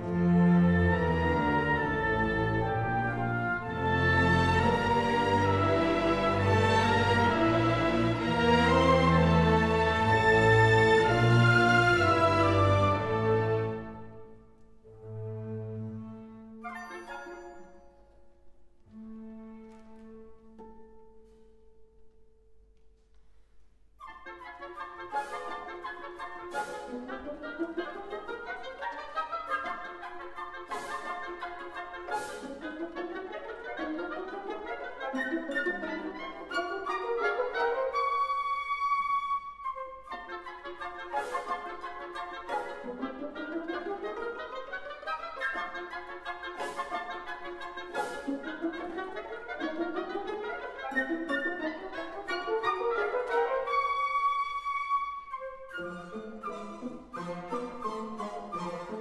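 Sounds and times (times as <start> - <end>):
orchestra playing classical music: 0.0 - 22.7, 23.8 - 59.0.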